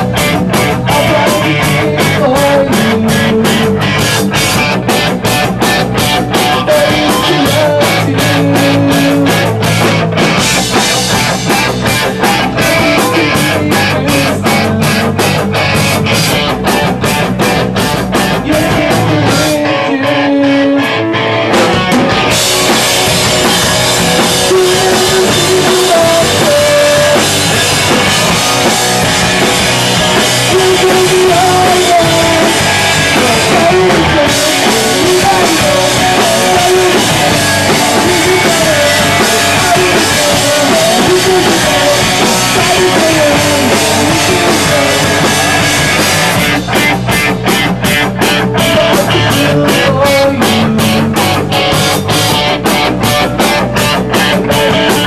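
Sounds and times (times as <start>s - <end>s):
drum kit with cymbal hits: 0.0s - 20.5s, 21.5s - 55.0s
electric guitars: 0.0s - 55.0s
live rock band playing: 0.0s - 55.0s.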